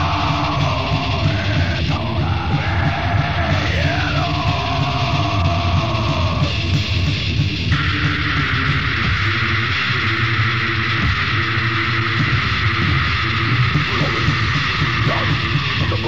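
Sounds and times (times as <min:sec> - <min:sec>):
distorted guitar: 0:00.0 - 0:16.0
metal band playing: 0:00.0 - 0:16.0.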